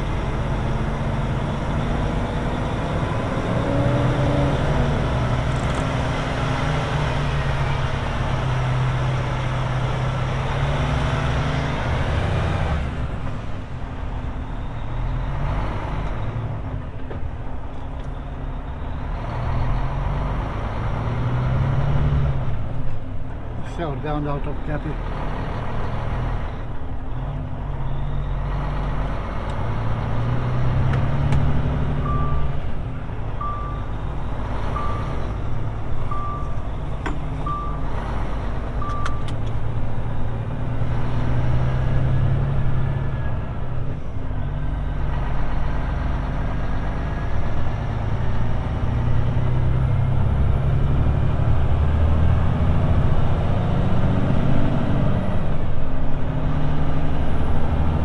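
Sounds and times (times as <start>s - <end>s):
diesel truck accelerating through gears: 0.0s - 58.0s.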